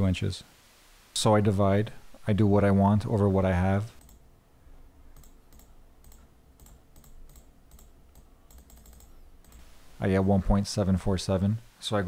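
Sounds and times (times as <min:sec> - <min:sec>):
computer mouse clicks: 0:04.0 - 0:04.2, 0:05.2 - 0:09.7.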